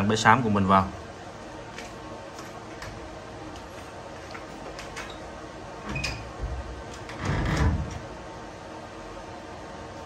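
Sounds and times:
small fans whirring: 0.0 - 10.0.

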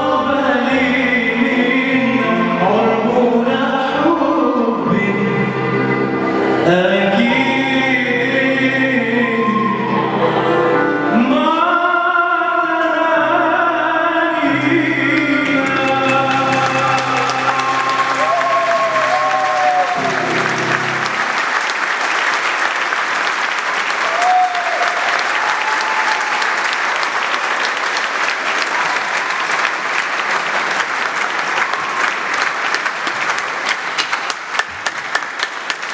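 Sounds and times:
low accompaniment chord: 14.5 - 21.7
congregation applauding: 15.0 - 35.9.

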